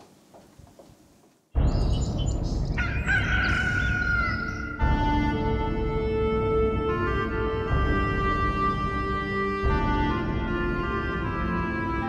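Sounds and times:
organ music: 1.6s - 12.0s
rooster crowing: 2.8s - 4.8s.

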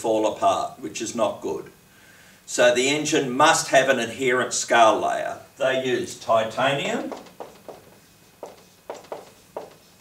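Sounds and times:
marker writing on whiteboard: 7.0s - 10.0s.

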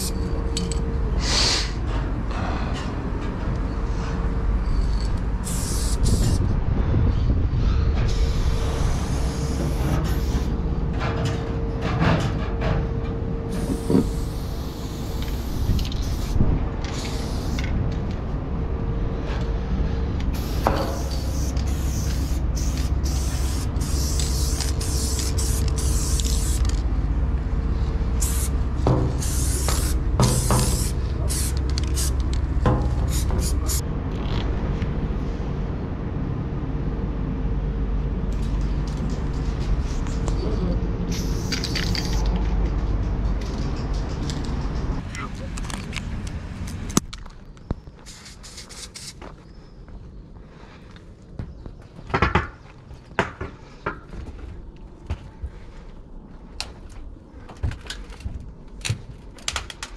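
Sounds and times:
steady low rumble: 0.0s - 48.7s, 53.6s - 59.4s
spray paint can hissing: 5.4s - 6.4s, 8.4s - 10.5s, 13.5s - 17.7s, 20.4s - 26.8s, 28.2s - 33.8s, 41.1s - 42.2s, 48.0s - 49.2s.

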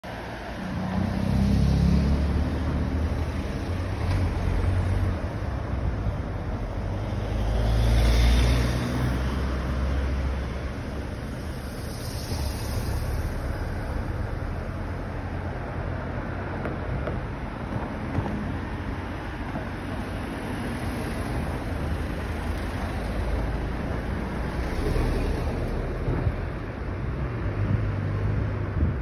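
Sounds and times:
cars passing: 0.0s - 29.0s
low rumble of traffic: 0.0s - 29.0s.

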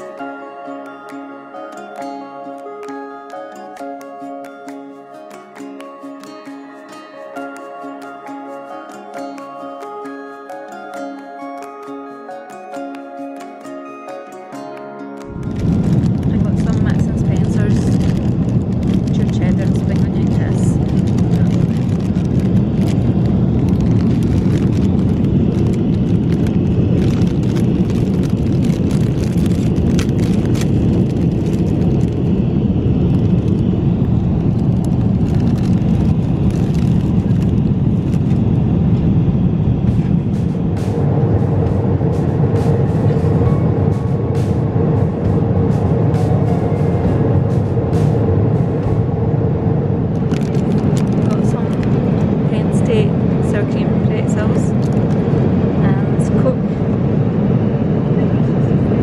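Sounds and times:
airliner cabin roar: 0.0s - 59.0s
steady hum: 29.8s - 59.0s.

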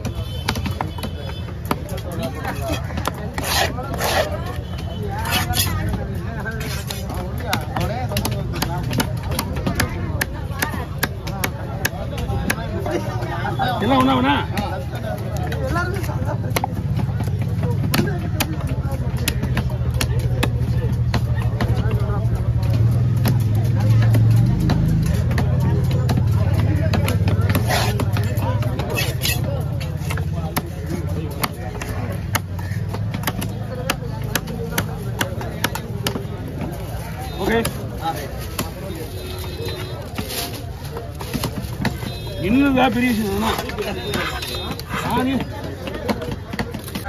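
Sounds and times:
knife chopping fish on wood: 0.0s - 12.9s, 16.4s - 21.8s, 26.1s - 38.8s, 40.1s - 42.4s, 43.1s - 47.0s
people talking: 0.0s - 47.0s
knife rasping across fish: 2.5s - 7.2s, 27.5s - 28.2s, 28.8s - 30.2s.

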